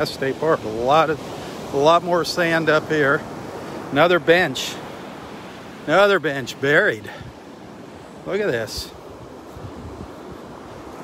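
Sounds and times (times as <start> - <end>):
wind buffeting microphone: 8.5 - 11.0.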